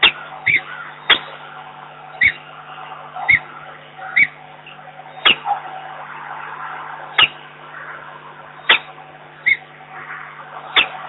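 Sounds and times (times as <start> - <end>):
falcon calling: 0.0 - 11.0
steady low hum: 0.0 - 11.0.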